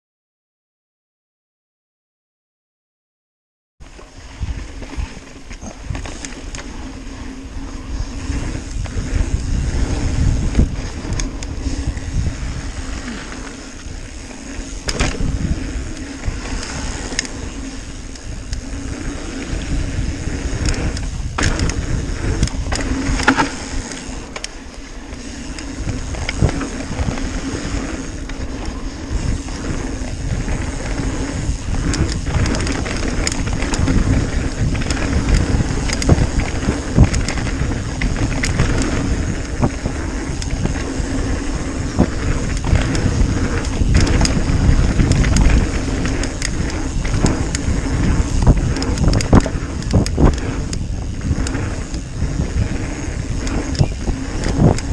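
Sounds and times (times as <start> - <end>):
bike tyres rolling on dirt: 3.8 - 54.9
wind rumble on microphone: 3.9 - 54.9
bike knocks and clatters: 14.8 - 15.5, 20.6 - 24.5.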